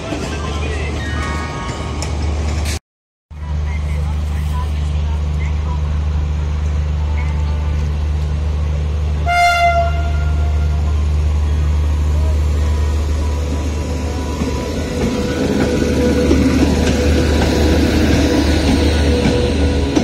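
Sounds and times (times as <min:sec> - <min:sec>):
low hum of electric locomotives: 0:03.4 - 0:20.0
locomotive horn blast: 0:09.2 - 0:11.0.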